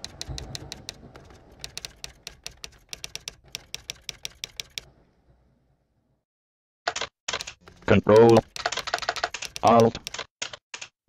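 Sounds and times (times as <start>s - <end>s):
keyboard typing clicks: 0.0s - 4.9s, 6.9s - 10.9s.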